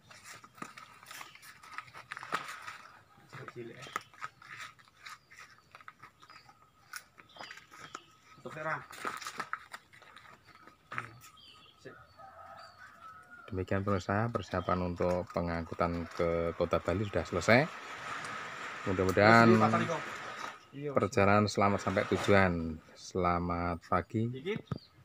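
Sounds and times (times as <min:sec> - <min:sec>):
clicks and rustles of plants handled: 0:00.0 - 0:11.6, 0:12.2 - 0:22.7.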